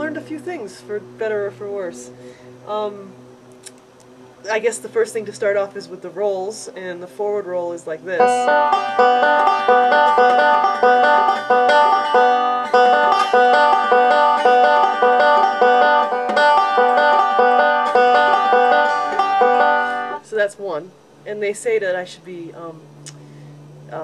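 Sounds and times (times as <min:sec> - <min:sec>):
banjo picked fingerstyle: 0:08.2 - 0:20.2.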